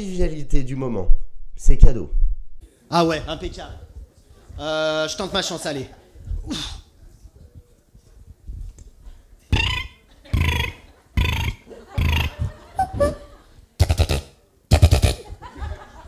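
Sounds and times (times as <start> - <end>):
beatboxer burp-like vocal noises: 9.5 - 13.2, 13.8 - 15.4.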